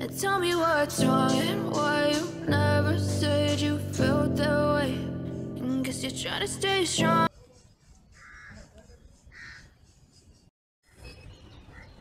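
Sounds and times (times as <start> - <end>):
bird calling: 7.4 - 12.0.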